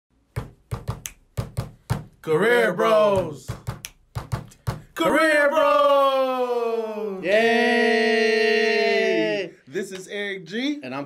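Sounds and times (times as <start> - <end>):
rhythmic knocks and thumps: 0.3 - 2.2, 3.1 - 5.0.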